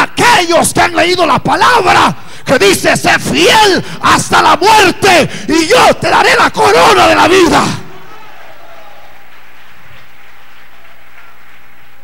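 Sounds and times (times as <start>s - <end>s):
congregation clapping: 7.8s - 12.0s.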